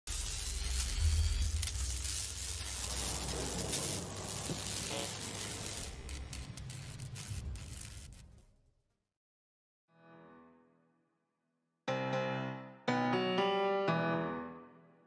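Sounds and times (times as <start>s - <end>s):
glitchy crackling noise: 0.1s - 8.6s.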